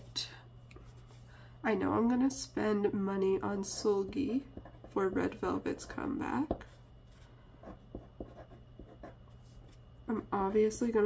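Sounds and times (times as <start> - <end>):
pen scratching on paper: 7.1 - 9.2.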